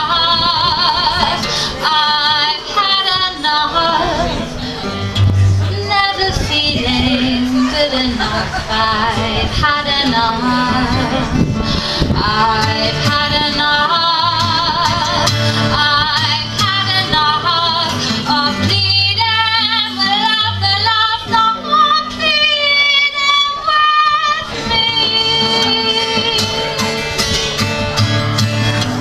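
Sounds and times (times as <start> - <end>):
woman singing with vibrato: 0.0 - 26.9
acoustic guitar: 0.0 - 29.0.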